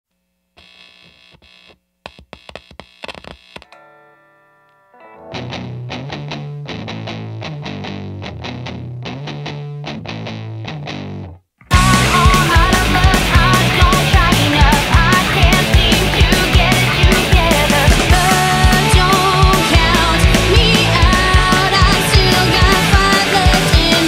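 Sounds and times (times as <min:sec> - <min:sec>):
pulsing riff with heavy bass: 0:05.4 - 0:24.0
short stabbed notes: 0:11.6 - 0:14.1
band playing rock music: 0:11.7 - 0:24.0.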